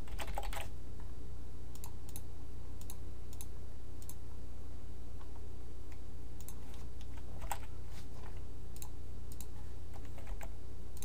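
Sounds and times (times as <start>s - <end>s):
typing on keyboard: 0.0s - 0.7s, 9.4s - 10.5s
steady low hum: 0.0s - 11.0s.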